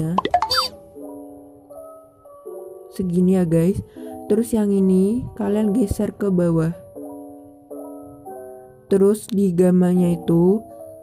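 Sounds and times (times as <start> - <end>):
gentle background music: 0.0 - 11.0.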